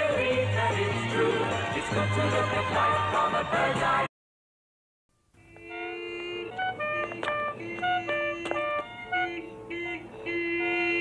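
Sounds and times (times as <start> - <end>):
light instrumental music: 5.5 - 11.0.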